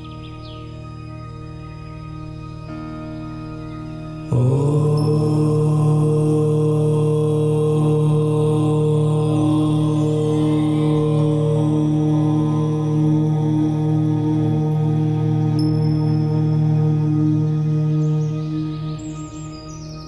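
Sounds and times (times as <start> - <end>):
low voice chanting om: 0.0 - 20.0
meditation music drone: 0.0 - 20.0.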